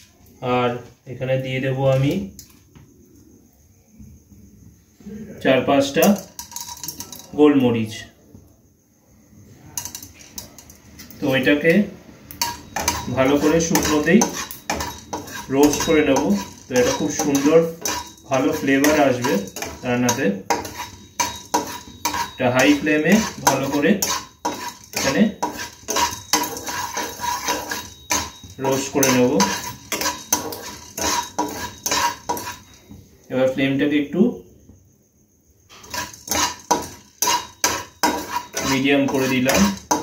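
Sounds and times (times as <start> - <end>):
spatula scraping dry pan: 12.4 - 33.0, 35.7 - 40.0.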